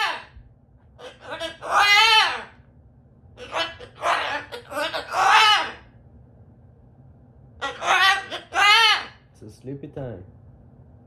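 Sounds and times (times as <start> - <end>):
cockatoo calling: 0.0 - 0.4, 1.0 - 2.6, 3.4 - 5.9, 7.6 - 9.3.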